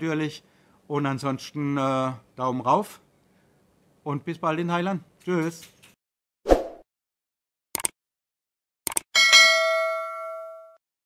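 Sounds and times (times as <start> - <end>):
notification bell ding: 9.2 - 10.8.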